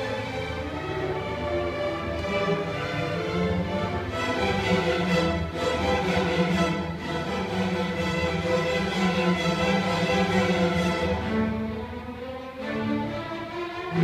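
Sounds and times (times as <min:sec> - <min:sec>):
string orchestra playing: 0:00.0 - 0:14.0.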